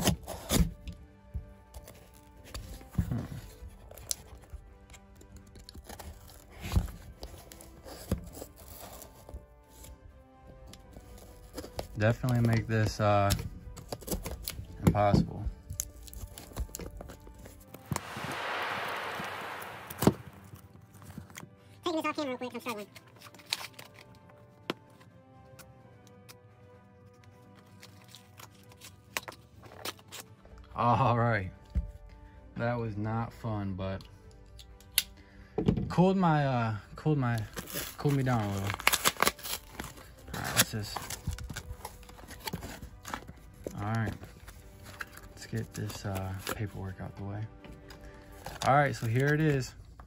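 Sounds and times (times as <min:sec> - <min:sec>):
cardboard and tape tearing: 0:00.0 - 0:00.8, 0:27.8 - 0:30.3, 0:37.4 - 0:46.6
sharp snap: 0:17.9 - 0:20.6.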